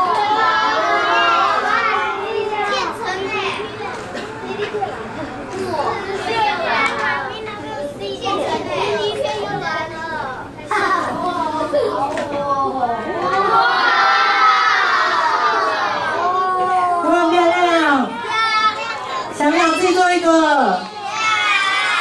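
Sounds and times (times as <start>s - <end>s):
children talking and calling out: 0.0s - 22.0s.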